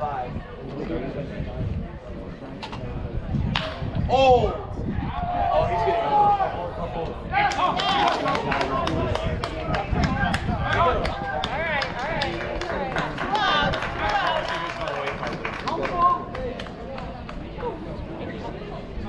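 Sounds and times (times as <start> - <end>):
crowd shouting and cheering: 3.8 - 17.9.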